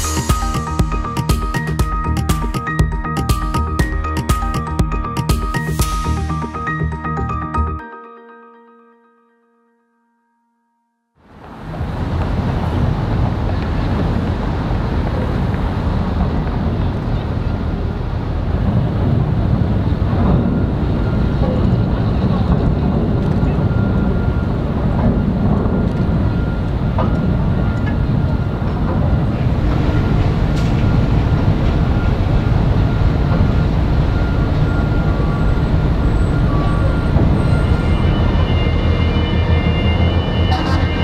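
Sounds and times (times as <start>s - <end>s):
machinery and ship engines rumbling: 0.0s - 7.8s, 11.2s - 41.0s
faint steady whine: 11.4s - 41.0s.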